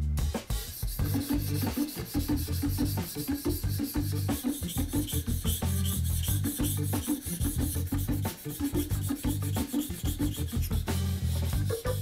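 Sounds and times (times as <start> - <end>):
background music with steady beat: 0.0 - 12.0
blade scraping on wet whetstone: 0.8 - 11.8.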